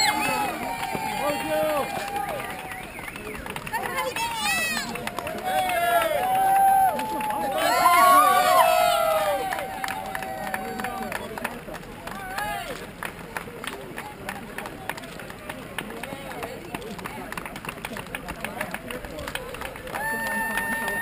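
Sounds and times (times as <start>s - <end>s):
spectators calling out: 0.0s - 11.1s
runners' footsteps on asphalt: 0.0s - 21.0s.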